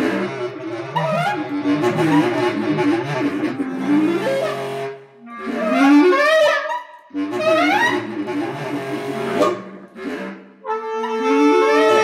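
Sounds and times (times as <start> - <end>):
bass clarinet playing canon: 0.6 - 9.9, 10.6 - 12.0.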